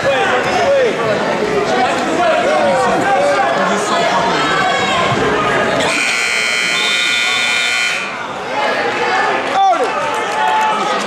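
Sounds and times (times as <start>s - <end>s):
scoreboard buzzer tone: 5.8s - 8.3s.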